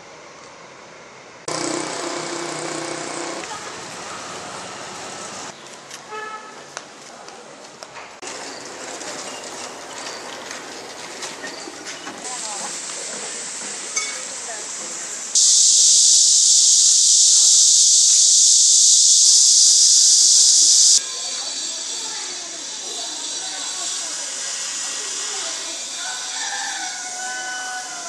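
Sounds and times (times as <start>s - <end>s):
background voices and bustle: 6.6s - 28.0s
loud steady hiss: 12.3s - 21.0s.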